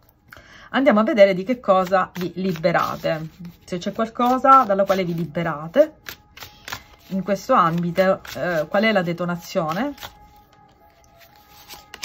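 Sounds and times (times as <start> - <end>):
background music of held tones: 0.0 - 12.0
cards rubbing: 1.8 - 12.0.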